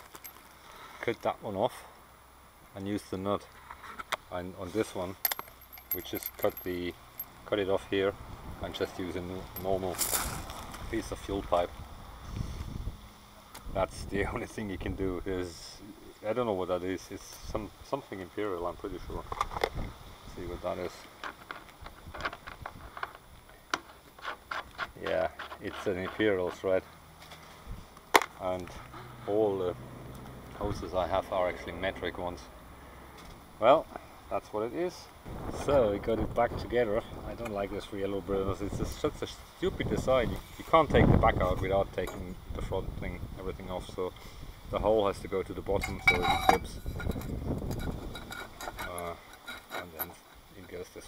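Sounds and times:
metal cover clicking and scraping: 0:45.8 - 0:50.9.

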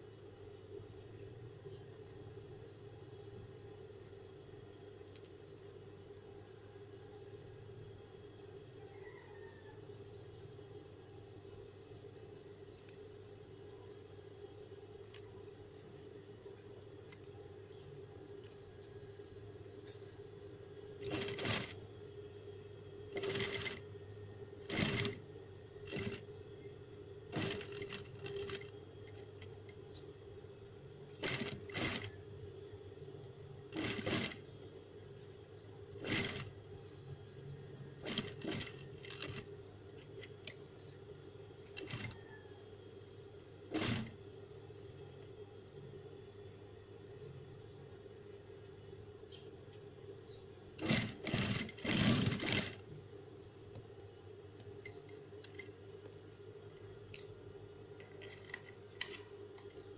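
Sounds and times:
sewing machine stitching: 0:21.0 - 0:21.8, 0:23.1 - 0:23.8, 0:24.7 - 0:25.2, 0:25.9 - 0:26.2, 0:27.3 - 0:28.7, 0:31.2 - 0:32.1, 0:33.7 - 0:34.4, 0:36.0 - 0:36.5, 0:38.0 - 0:39.5, 0:41.7 - 0:42.2, 0:43.7 - 0:44.1, 0:50.8 - 0:52.8.

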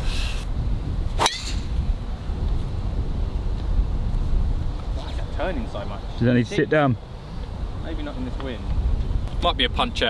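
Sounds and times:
wind on microphone: 0:00.0 - 0:10.0
golf club striking ball: 0:01.2 - 0:01.7.

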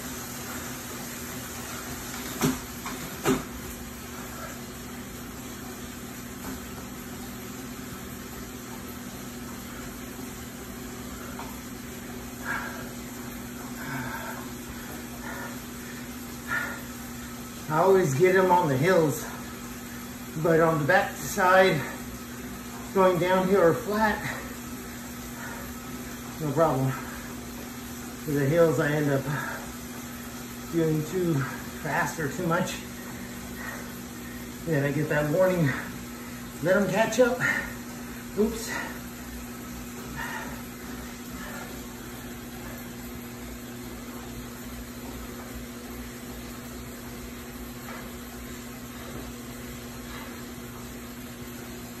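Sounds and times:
steady mechanical hum: 0:00.0 - 0:52.0
man speaking: 0:20.4 - 0:22.0, 0:22.9 - 0:24.4, 0:30.7 - 0:32.9, 0:34.6 - 0:35.9, 0:36.6 - 0:37.7, 0:38.4 - 0:39.0.

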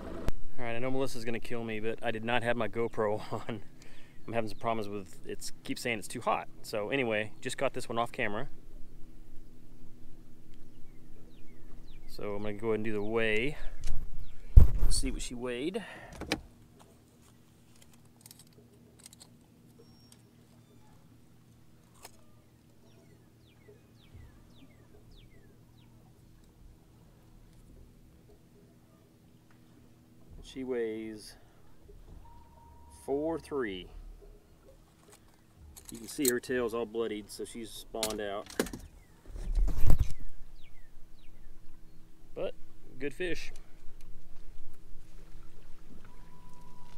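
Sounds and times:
low hum: 0:00.0 - 0:46.9
metallic clicks and rattles: 0:17.7 - 0:19.5, 0:34.9 - 0:36.5
bird whistled calls: 0:19.8 - 0:21.0, 0:32.2 - 0:33.1, 0:46.0 - 0:46.9.

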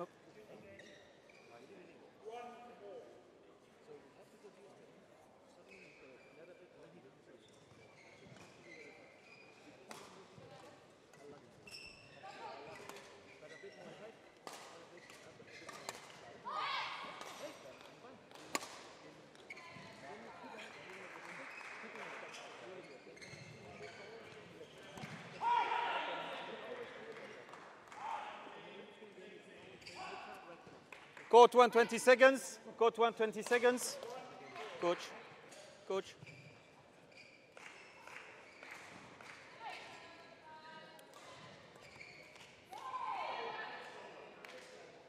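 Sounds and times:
voices echoing in hall: 0:10.1 - 0:45.0.

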